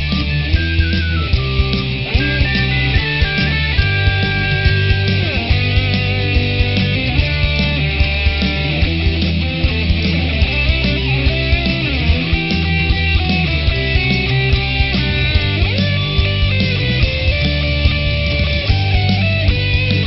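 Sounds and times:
bass guitar: 0.0s - 20.0s
electric guitar bending notes: 0.0s - 20.0s
steady drum beat: 0.0s - 20.0s.

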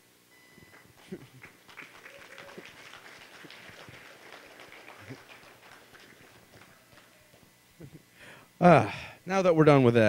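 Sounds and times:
faint laughter: 1.0s - 2.8s, 6.5s - 8.1s.

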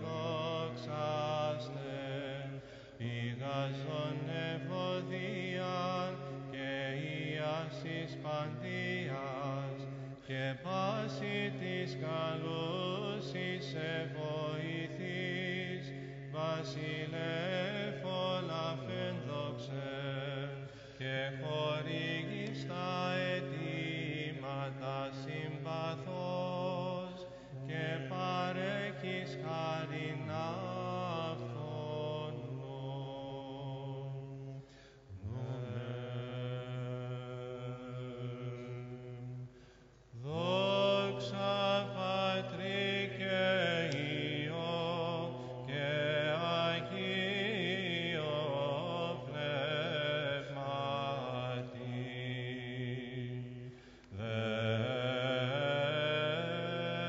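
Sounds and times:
melismatic chant melody: 0.0s - 57.0s.

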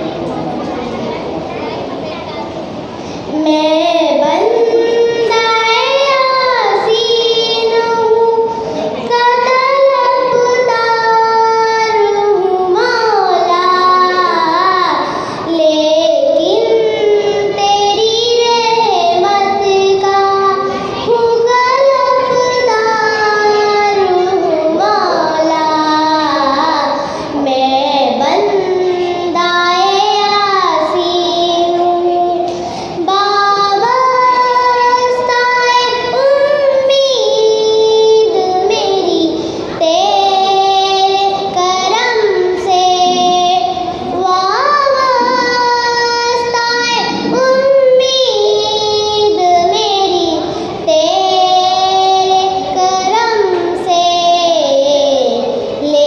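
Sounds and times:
girl singing into a microphone: 0.0s - 56.0s.

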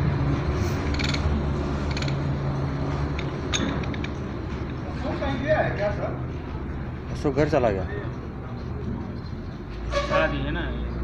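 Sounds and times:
metal gears clicking and knocking: 0.8s - 2.3s.

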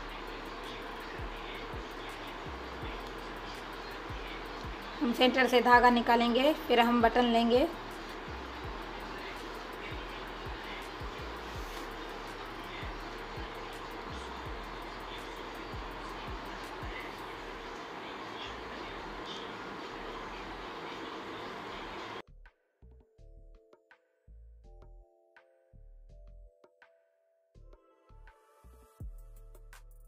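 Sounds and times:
background hum and hiss: 0.0s - 22.2s.

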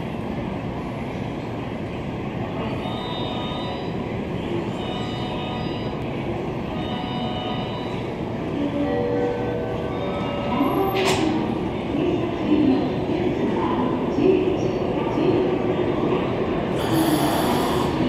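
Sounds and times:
electric train humming and hissing: 0.0s - 18.0s.

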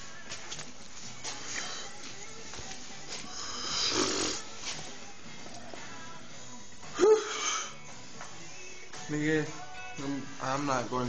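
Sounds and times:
man snoring: 3.3s - 4.5s.

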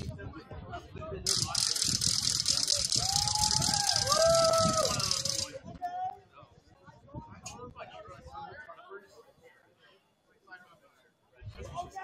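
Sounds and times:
loud rapid rattling: 1.3s - 5.6s.

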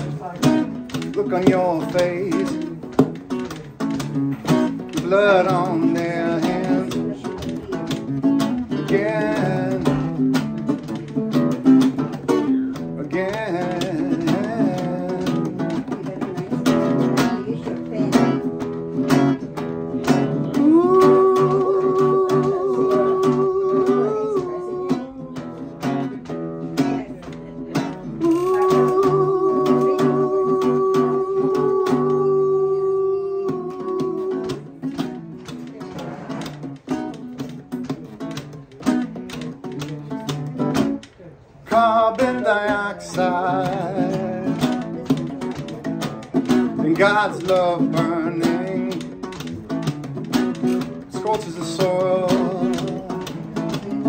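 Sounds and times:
man singing wordless notes: 0.0s - 41.0s, 41.6s - 54.0s
classical guitar strumming: 0.0s - 54.0s.

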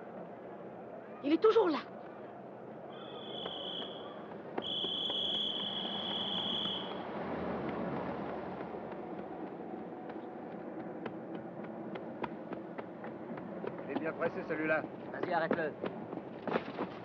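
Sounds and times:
street noise: 0.0s - 17.0s
police whistle blasts: 2.9s - 7.0s.

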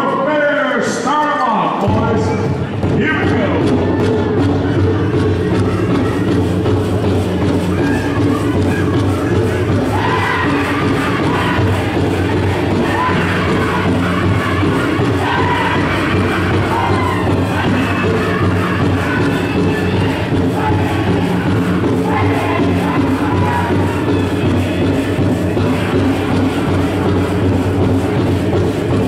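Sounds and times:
big drum steady beat: 2.0s - 29.0s
high-pitched group singing: 7.4s - 29.0s.

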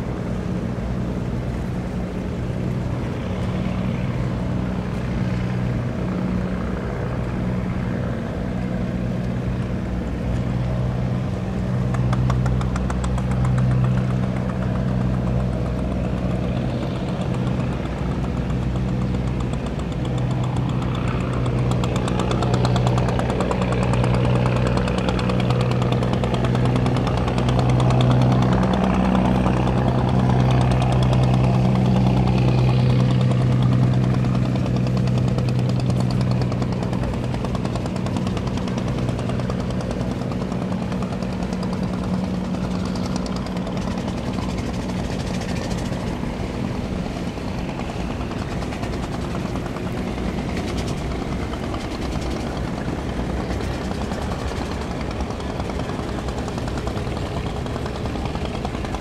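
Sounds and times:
boat engine droning: 0.0s - 59.0s.

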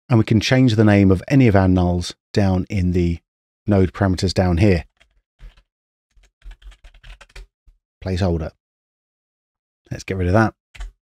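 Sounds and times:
computer keyboard typing: 4.9s - 7.5s, 10.8s - 11.0s.

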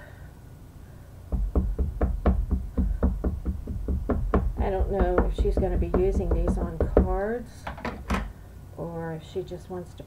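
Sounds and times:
ink pad knocking on stamp: 1.3s - 8.3s.

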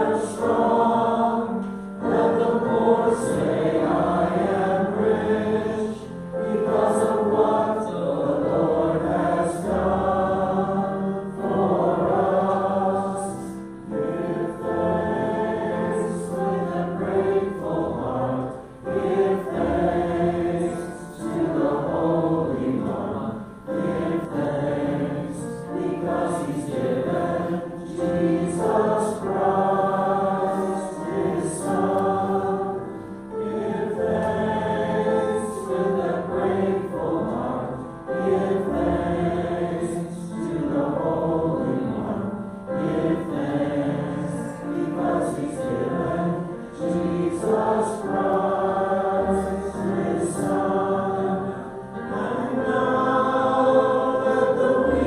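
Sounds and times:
group singing a hymn: 0.0s - 55.0s
keyboard: 0.0s - 55.0s.

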